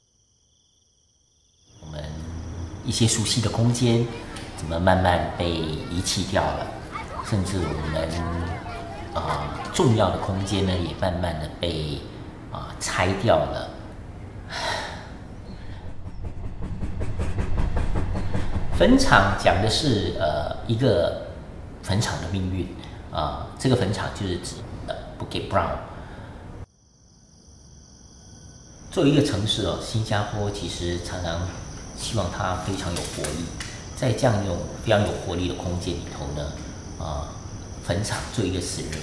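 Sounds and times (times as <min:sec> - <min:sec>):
insects chirring: 0:00.0 - 0:16.3, 0:18.1 - 0:39.0
train running on rails: 0:01.8 - 0:11.8, 0:14.9 - 0:22.3, 0:29.3 - 0:39.0
man speaking: 0:01.8 - 0:13.8, 0:18.8 - 0:25.9, 0:29.0 - 0:39.0.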